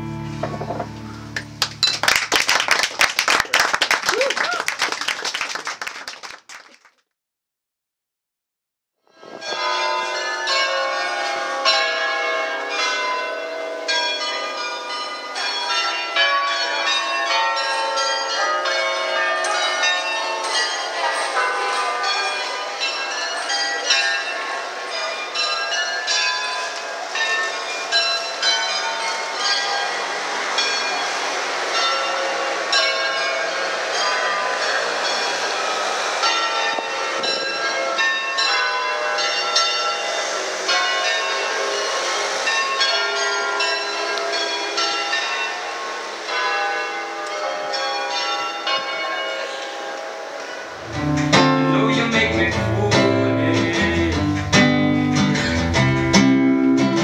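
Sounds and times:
bells ringing in a peal: 0.0 - 2.3, 9.1 - 57.0
hiss-like noise: 26.0 - 47.2.

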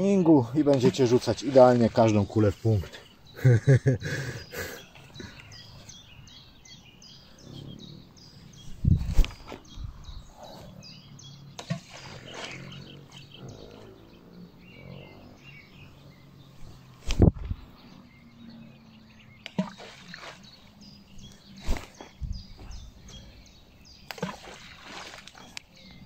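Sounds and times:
bird chirping: 0.0 - 26.0.

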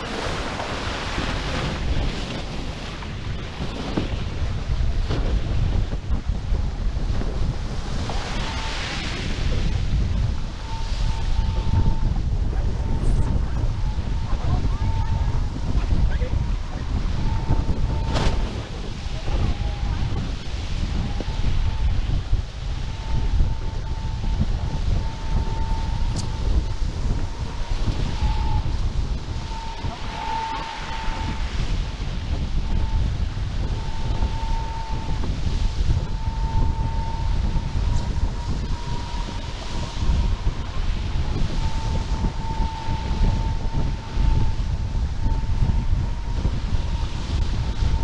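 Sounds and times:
wind buffeting microphone: 0.0 - 48.0
high whistling tone: 8.1 - 48.0.

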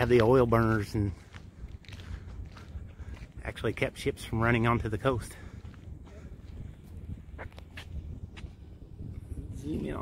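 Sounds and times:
faint footsteps on a path: 0.0 - 10.0
low rumble of wind: 0.0 - 10.0.

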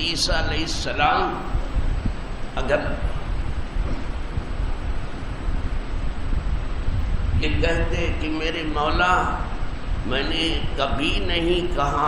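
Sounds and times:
low rumble: 0.0 - 10.8.

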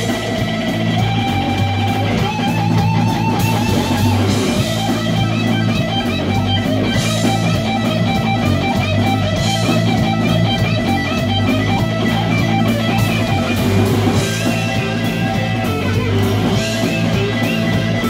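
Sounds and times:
drums and cymbals: 0.0 - 18.0
electric guitar strummed: 0.0 - 18.0.

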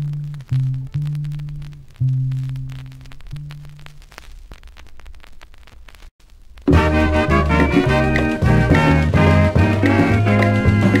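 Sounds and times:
vinyl surface crackle and hiss: 0.0 - 11.0
held low music notes: 6.7 - 11.0.

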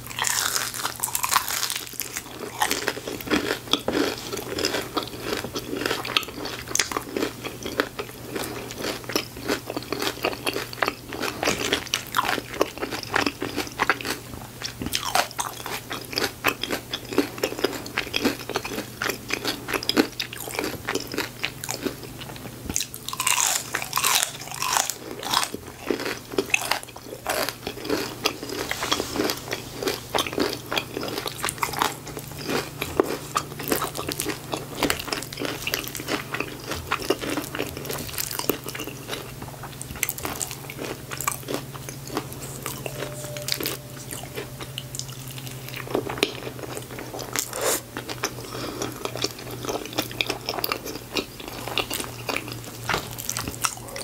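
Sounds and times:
crunching and chewing onion ring: 0.0 - 54.0.

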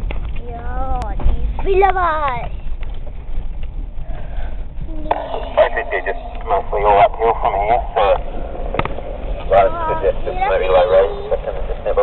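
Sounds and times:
engine rumble: 0.0 - 12.0
people talking: 4.9 - 8.3, 9.4 - 12.0.

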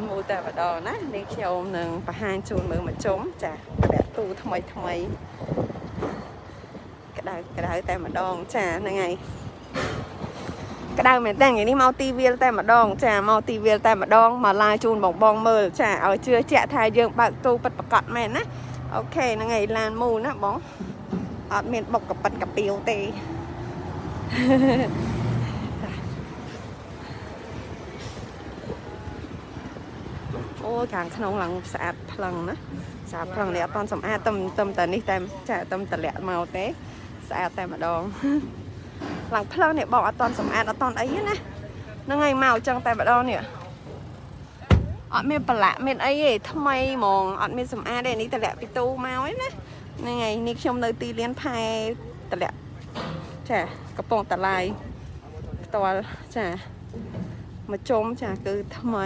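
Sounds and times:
woman speaking: 0.0 - 5.2, 7.1 - 9.3, 10.9 - 20.7, 21.5 - 23.3, 30.5 - 38.5, 39.2 - 43.6, 45.1 - 52.6, 53.4 - 54.9, 55.7 - 56.7, 57.6 - 59.0
vehicles running: 0.0 - 59.0.

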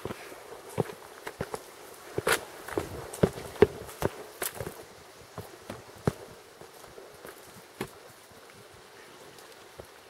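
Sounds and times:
trekking pole tapping ground: 0.0 - 8.1
footsteps on rocky gravel: 0.0 - 8.3.

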